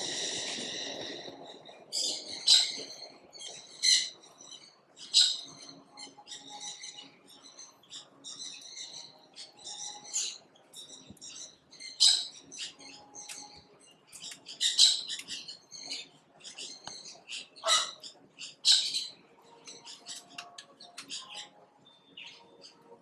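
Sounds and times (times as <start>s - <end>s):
small birds chirping: 0.0s - 23.0s.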